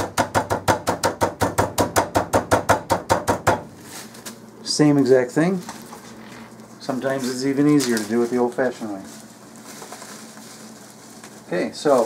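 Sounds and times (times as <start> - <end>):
hand pounding bag on wooden board: 0.0 - 3.7.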